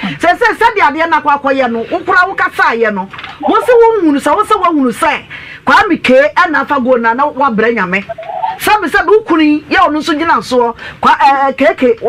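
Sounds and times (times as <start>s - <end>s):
woman talking animatedly: 0.0s - 12.0s.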